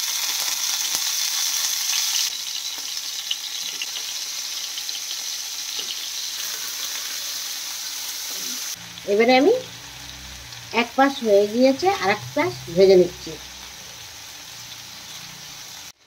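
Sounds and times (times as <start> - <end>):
cheese frying in a pan: 0.0 - 16.0.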